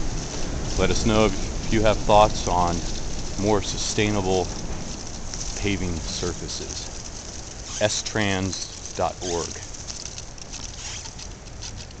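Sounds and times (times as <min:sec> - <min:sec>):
light rain pattering: 0:00.0 - 0:12.0
low steady rumble: 0:00.0 - 0:12.0.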